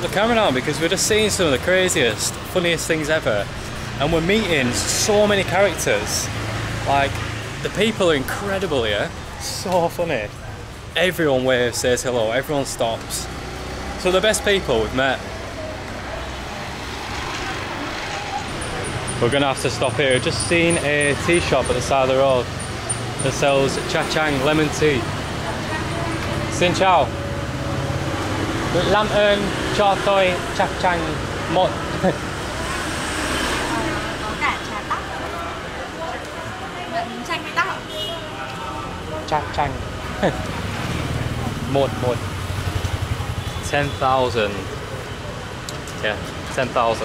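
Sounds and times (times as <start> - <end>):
street traffic: 0.0 - 47.0
vehicle passing: 11.2 - 47.0.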